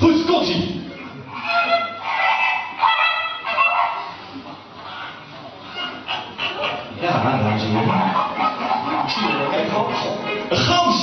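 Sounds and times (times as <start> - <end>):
goose honking over loudspeakers: 1.3 - 4.2, 4.8 - 11.0.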